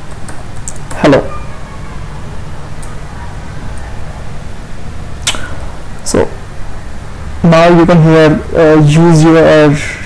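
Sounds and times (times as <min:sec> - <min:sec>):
low microphone hum: 0:00.0 - 0:10.0.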